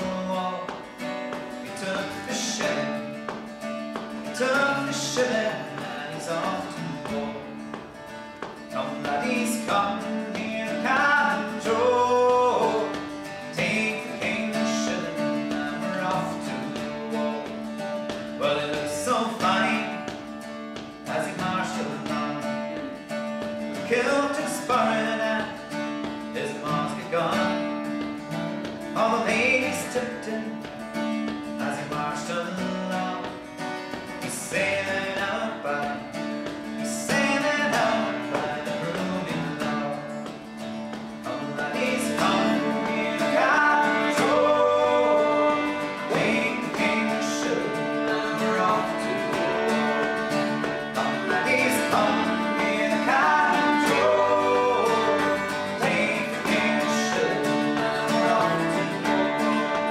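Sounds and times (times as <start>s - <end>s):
bouzouki: 0.0s - 59.9s
strummed acoustic guitar: 0.0s - 59.9s
person singing melody: 37.0s - 59.9s
fiddle: 40.9s - 59.9s.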